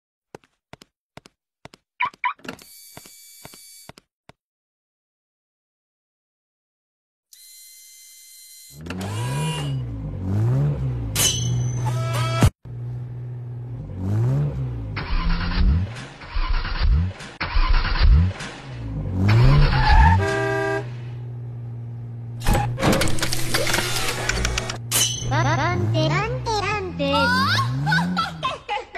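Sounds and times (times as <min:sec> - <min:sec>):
car engines revving in traffic: 0:08.8 - 0:28.6.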